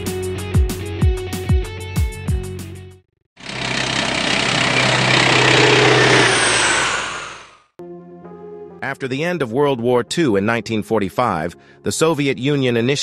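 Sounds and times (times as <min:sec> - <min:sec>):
aircraft engine roar: 0:03.4 - 0:07.6.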